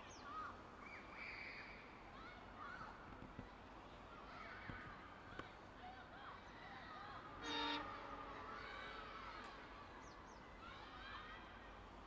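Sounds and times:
locomotive horn toot: 0:07.4 - 0:08.5.

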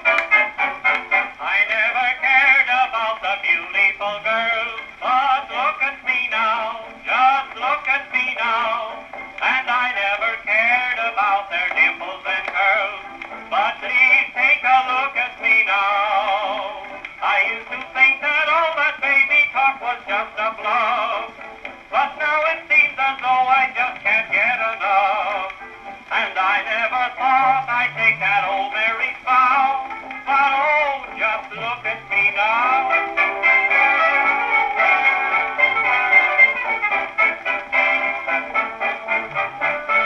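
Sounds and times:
dance band record on gramophone: 0:00.0 - 0:40.0
record crackle: 0:00.0 - 0:40.0.

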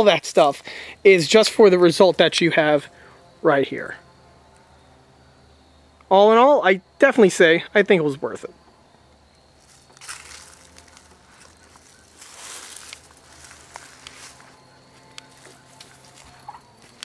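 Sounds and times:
faint steady low hum: 0:00.0 - 0:17.0
soft rustles and scuffs: 0:09.6 - 0:17.0.

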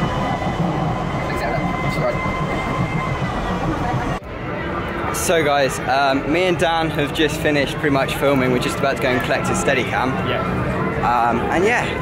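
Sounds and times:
train wheels rumbling on track: 0:00.0 - 0:04.2
faint steady whine: 0:00.0 - 0:12.0.

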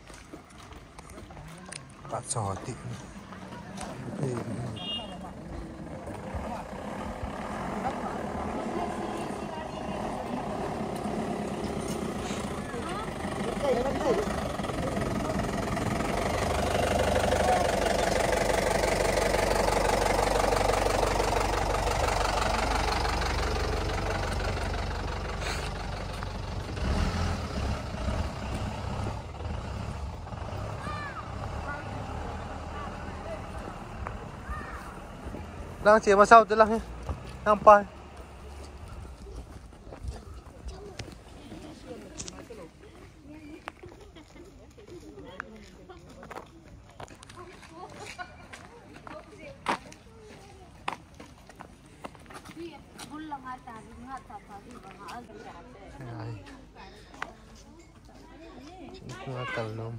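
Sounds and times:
vehicle engine running: 0:00.0 - 0:42.3.

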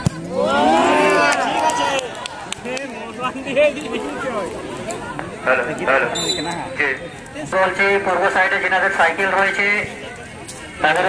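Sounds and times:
football spectators shouting: 0:00.0 - 0:06.6
crowd chatter: 0:00.0 - 0:11.0.

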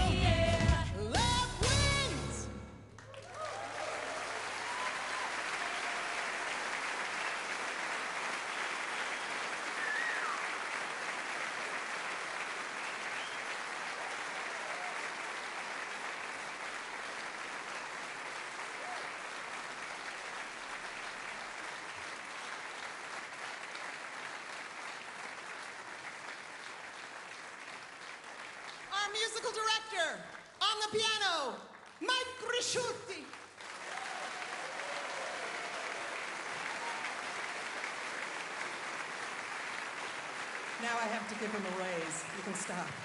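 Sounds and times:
audience clapping: 0:03.0 - 0:43.0.

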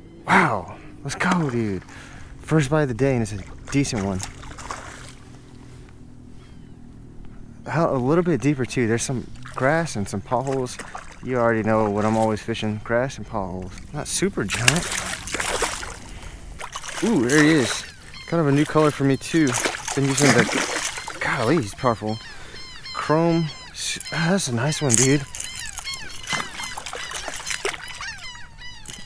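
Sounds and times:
birds chirping: 0:00.0 - 0:29.0
fish thrashing water splashing: 0:03.2 - 0:05.4, 0:09.1 - 0:12.7, 0:13.7 - 0:22.9, 0:24.0 - 0:29.0.

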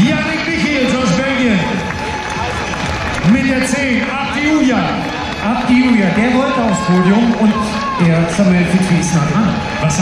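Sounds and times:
crowd noise: 0:00.0 - 0:10.0
man talking over loudspeaker: 0:00.0 - 0:10.0.

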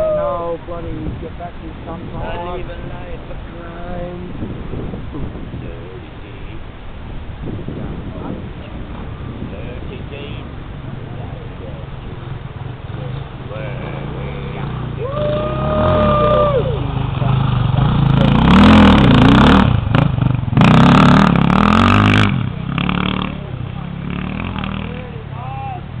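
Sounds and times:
dirt bike engine revving: 0:09.0 - 0:26.0.

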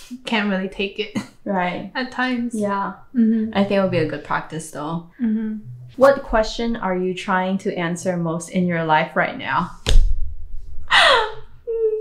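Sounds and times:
sharp knock: 0:09.8 - 0:10.4
woman gasping and moaning: 0:10.9 - 0:12.0.

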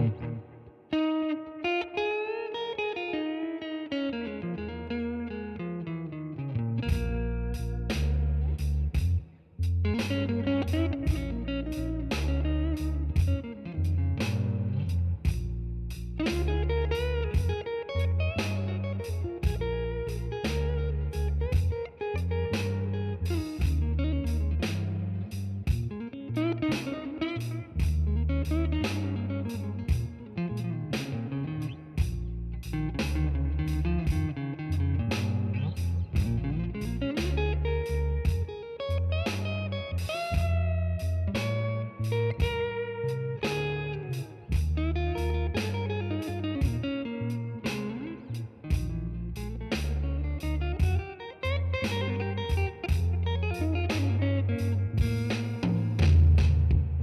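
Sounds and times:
bass line: 0:00.0 - 0:00.7, 0:06.6 - 0:57.0
electric guitar blues lead: 0:00.0 - 0:57.0
steady beat: 0:06.8 - 0:57.0.

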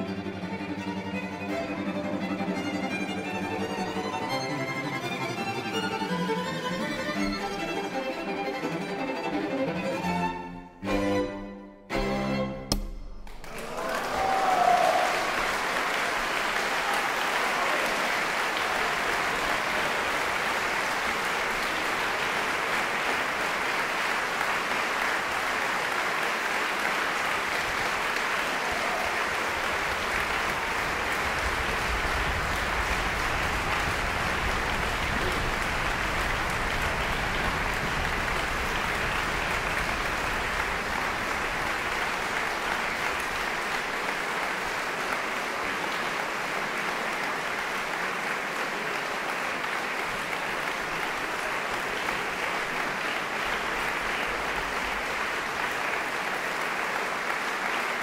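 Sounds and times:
audience applauding: 0:00.0 - 0:10.2, 0:13.3 - 0:58.0.

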